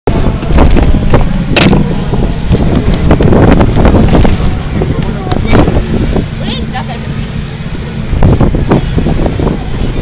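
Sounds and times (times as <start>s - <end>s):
wind buffeting microphone: 0.1s - 10.0s.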